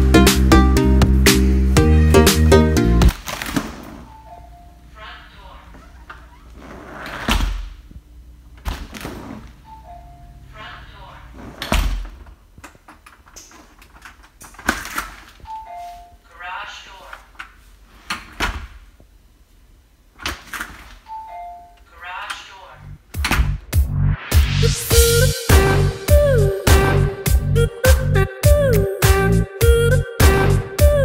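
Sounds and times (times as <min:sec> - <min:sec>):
voice announcement: 0:04.9 - 0:06.1, 0:10.4 - 0:11.4, 0:16.2 - 0:17.4, 0:21.8 - 0:23.0
door closing thud: 0:23.2 - 0:23.6.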